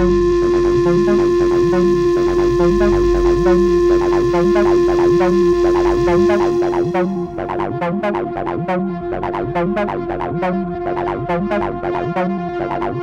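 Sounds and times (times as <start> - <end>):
acid techno drone: 0.0 - 13.0
repeating electronic figure: 0.0 - 13.0.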